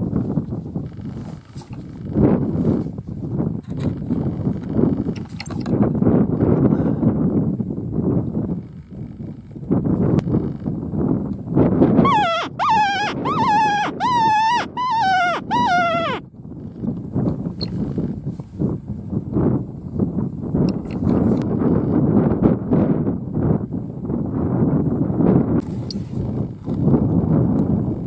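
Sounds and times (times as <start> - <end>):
wind rumble on microphone: 0.0 - 28.0
hunting horn squeals: 12.0 - 16.2.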